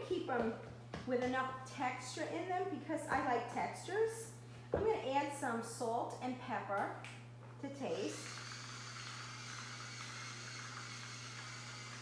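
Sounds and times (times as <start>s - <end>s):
electric grinder motor whirring: 7.9s - 12.0s.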